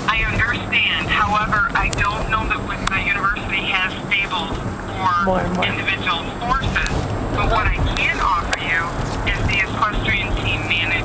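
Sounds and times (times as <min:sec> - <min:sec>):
speech over telephone line: 0:00.0 - 0:11.0.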